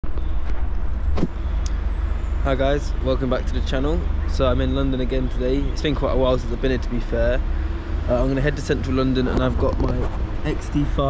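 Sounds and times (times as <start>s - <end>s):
city street traffic rumble: 0.0s - 11.0s.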